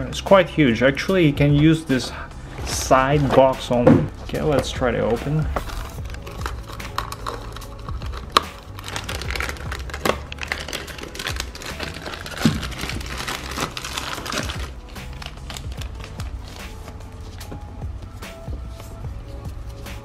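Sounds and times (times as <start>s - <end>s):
background music: 0.0s - 20.0s
plastic bags crinkling: 5.6s - 16.9s
scissors cutting plastic: 5.6s - 17.0s.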